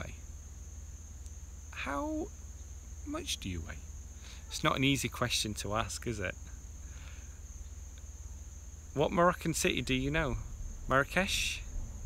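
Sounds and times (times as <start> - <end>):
high-pitched insect chorus: 0.0 - 12.0
low rumble: 9.8 - 12.0.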